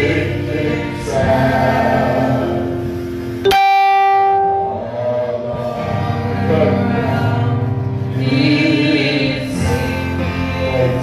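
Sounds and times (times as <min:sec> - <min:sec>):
gospel singing with accompaniment: 0:00.0 - 0:11.0
electronic keyboard held note: 0:03.4 - 0:05.0.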